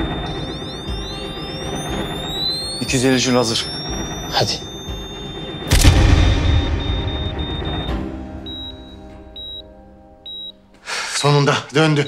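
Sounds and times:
dramatic music: 0.0 - 10.2
heart monitor beeping: 0.0 - 10.6
deep boom: 5.7 - 9.0.

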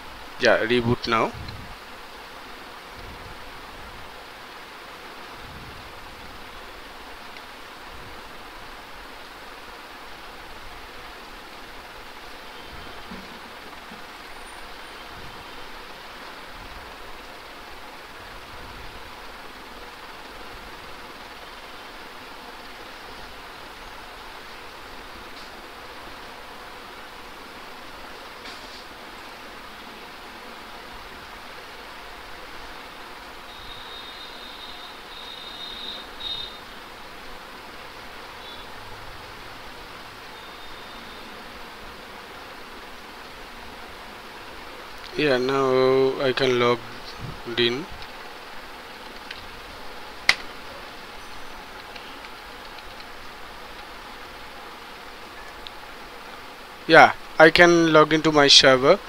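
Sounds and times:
background hiss: 0.0 - 59.0
faint hum: 0.0 - 59.0.

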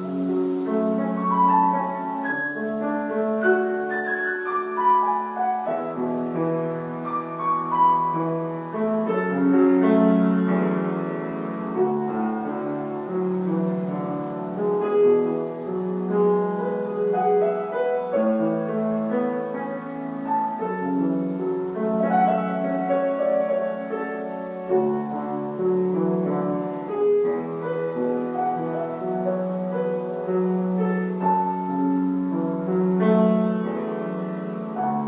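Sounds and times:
solo grand piano piece: 0.0 - 35.0.

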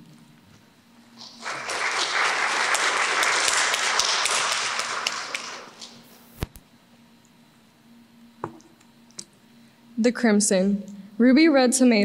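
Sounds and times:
audience applauding: 1.2 - 6.1.

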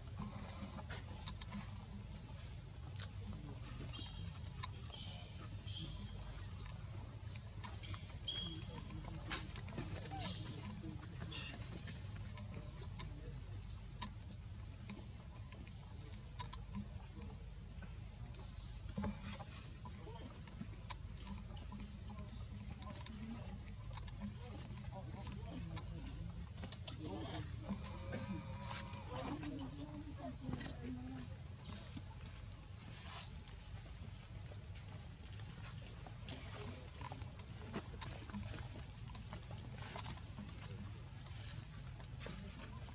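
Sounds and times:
macaques squeaking and chirping: 4.0 - 8.9.

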